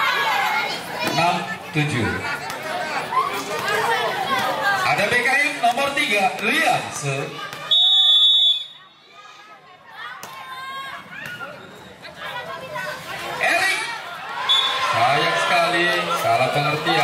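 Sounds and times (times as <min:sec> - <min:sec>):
spectators shouting and talking: 0:00.0 - 0:17.0
referee's whistle: 0:07.6 - 0:08.9, 0:14.4 - 0:14.9.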